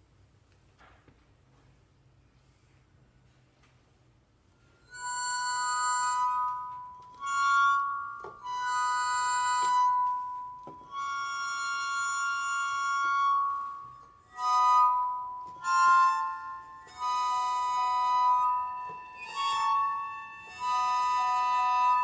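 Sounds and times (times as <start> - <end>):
bowed wine glasses ringing: 4.9 - 22.0.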